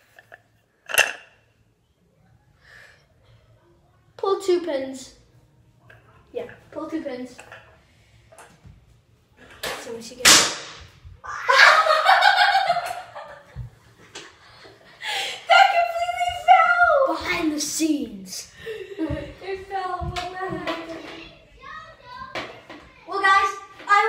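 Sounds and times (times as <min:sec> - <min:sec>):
children shrieking and giggling: 0:11.2 - 0:13.4.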